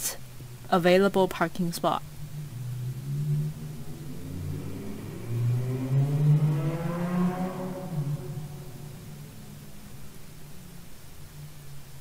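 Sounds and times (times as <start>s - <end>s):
vehicle engine speeding up: 1.8s - 12.0s.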